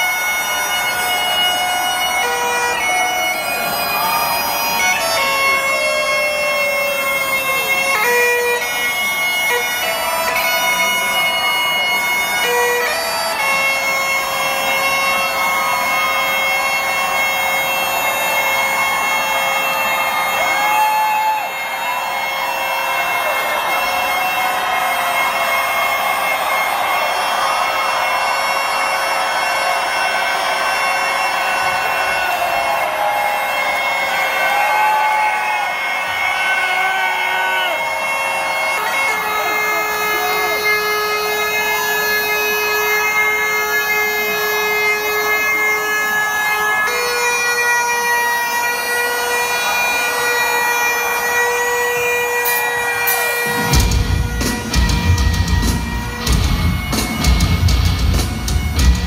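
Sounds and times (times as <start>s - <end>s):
bagpipe chanter melody: 0.0s - 59.0s
bagpipe drone: 0.0s - 59.0s.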